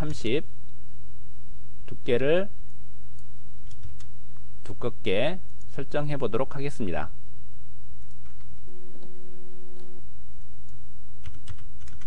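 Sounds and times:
steady low hum: 0:00.0 - 0:12.0
computer keyboard typing: 0:03.6 - 0:04.8, 0:08.0 - 0:09.1, 0:10.6 - 0:12.0.

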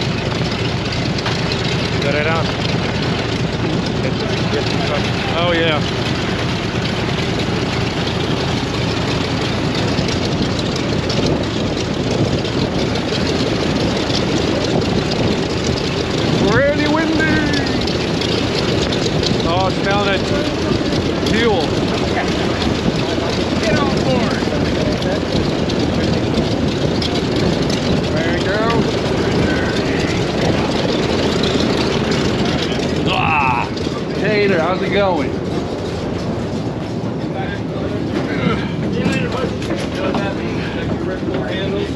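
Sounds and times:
propeller engine idling: 0:00.0 - 0:41.9
faint voices calling out: 0:29.1 - 0:34.4.

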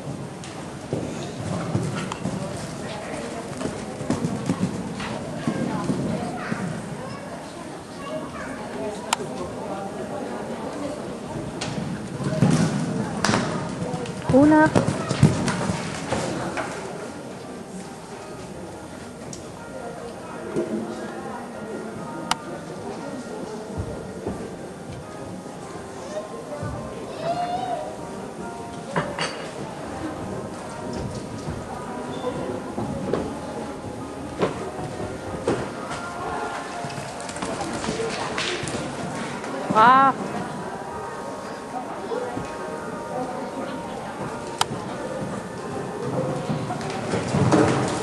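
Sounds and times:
faint music: 0:00.0 - 0:48.0
murmuring voices: 0:29.6 - 0:48.0.

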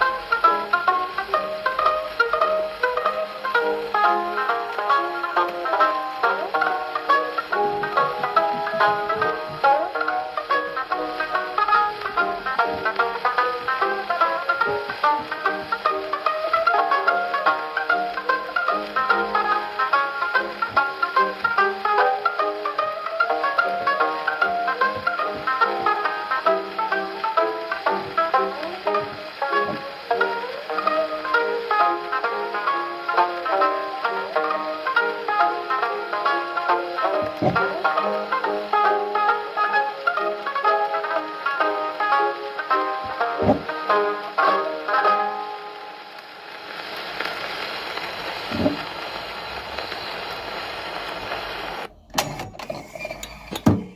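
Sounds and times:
banjo solo on gramophone: 0:00.0 - 0:53.9
low thump: 0:43.4 - 0:43.7.

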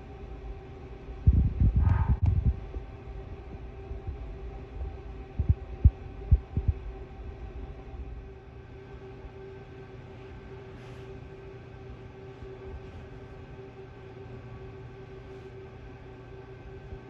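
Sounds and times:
steady low hum: 0:00.0 - 0:17.0
low thumps on microphone: 0:01.3 - 0:02.8.

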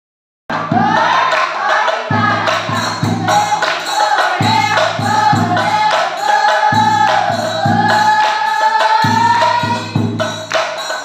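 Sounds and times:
women singing devotional chant: 0:00.5 - 0:11.0
brass hand cymbals clashing: 0:02.2 - 0:11.0
hands clapping: 0:03.6 - 0:03.8, 0:10.5 - 0:11.0.

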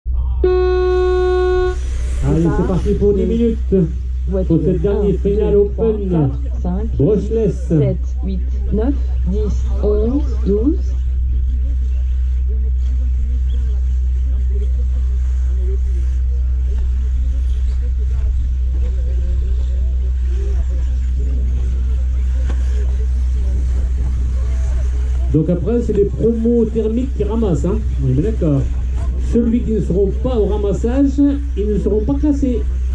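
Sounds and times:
faint voices talking: 0:00.1 - 0:32.9
low steady hum: 0:00.1 - 0:32.9
long electronic start tone: 0:00.4 - 0:02.8.

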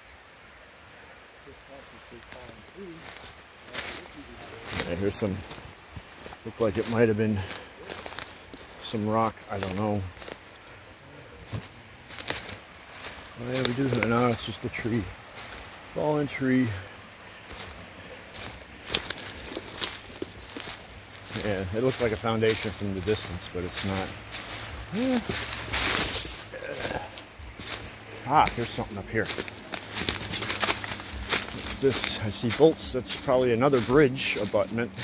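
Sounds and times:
rustling crackles: 0:01.7 - 0:35.0
footsteps crunching through dry leaves: 0:02.2 - 0:35.0.

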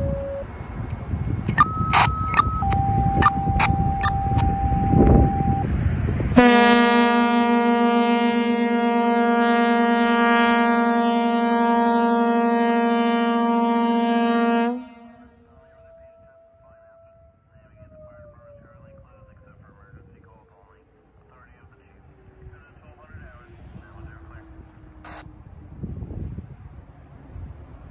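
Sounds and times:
two-tone radio page: 0:01.5 - 0:04.5, 0:15.6 - 0:21.9
air horns deep chord: 0:02.6 - 0:17.5.

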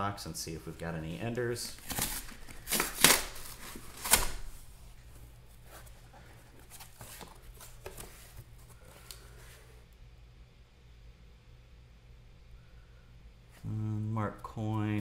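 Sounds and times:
cardboard rustling: 0:00.7 - 0:09.7
tape ripped off cardboard: 0:01.9 - 0:04.5.

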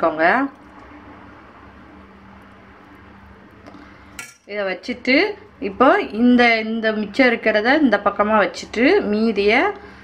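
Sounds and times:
low room hum: 0:00.0 - 0:10.0
steel spoon clinking on pot: 0:04.2 - 0:04.5.

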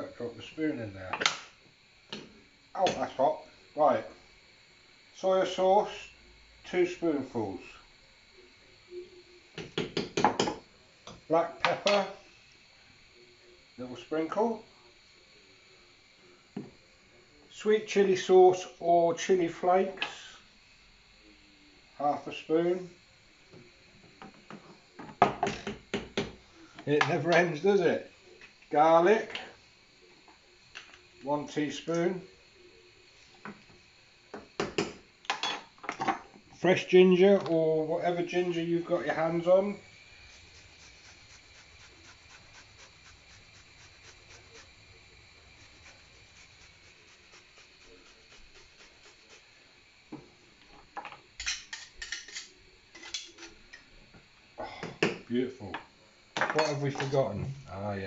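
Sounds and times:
jars set down on worktop: 0:09.6 - 0:12.0, 0:54.7 - 0:57.1
ginger grated on metal grater: 0:39.2 - 0:49.5.

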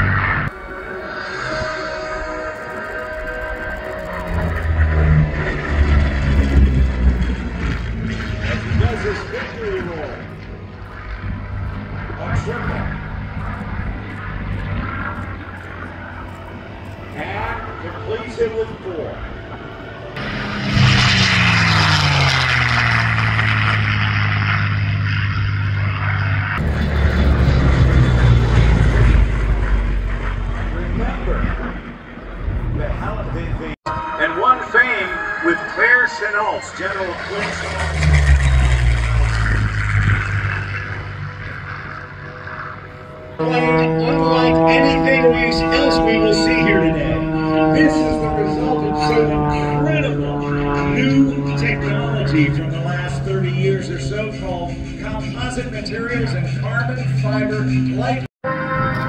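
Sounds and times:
aircraft piston engine drone: 0:00.0 - 0:59.0.

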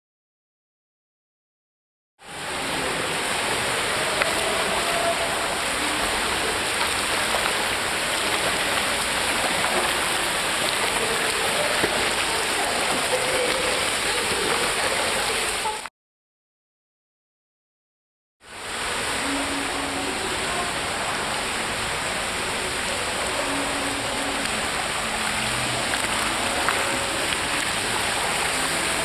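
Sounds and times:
pool water splashing: 0:02.2 - 0:15.9, 0:18.5 - 0:29.0.

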